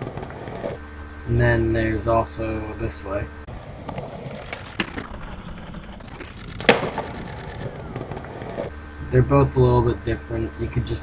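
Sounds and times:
skateboard sharp crack: 0:00.0 - 0:00.8, 0:03.5 - 0:08.7
skateboard rolling on concrete: 0:00.0 - 0:09.2.

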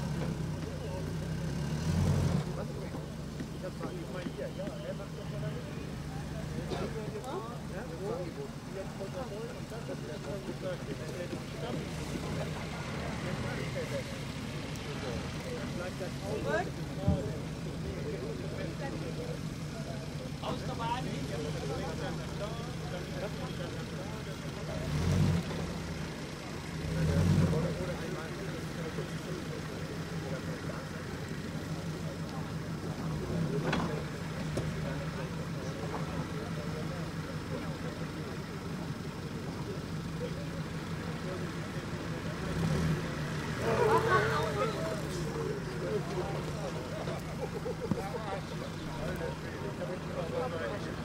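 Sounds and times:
off-road vehicle engine running: 0:00.0 - 0:51.0.

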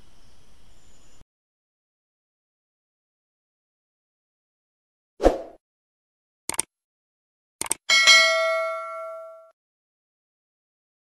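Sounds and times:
quick clicks: 0:06.5 - 0:06.7, 0:07.6 - 0:07.8
bright bell-like ding: 0:07.9 - 0:09.6.

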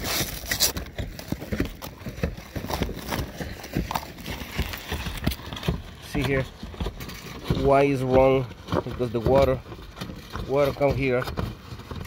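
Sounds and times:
footsteps on a shingle roof: 0:00.0 - 0:12.0.

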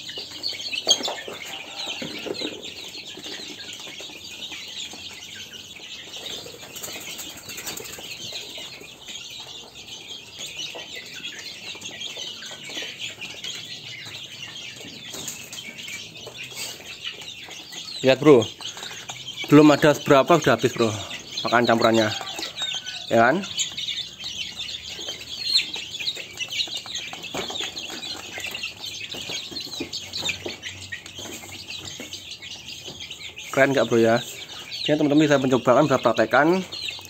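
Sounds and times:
chicken calls: 0:00.0 - 0:37.0
chickens pecking and scuffling: 0:00.0 - 0:37.0.

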